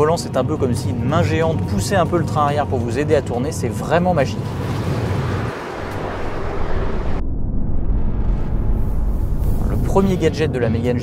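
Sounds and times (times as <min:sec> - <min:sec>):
low steady rumble: 0:00.0 - 0:11.0
car driving by: 0:04.2 - 0:09.8.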